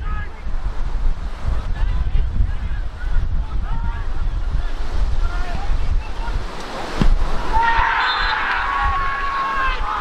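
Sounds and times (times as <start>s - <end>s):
wind buffeting microphone: 0.0s - 10.0s
distant shouts: 7.4s - 10.0s.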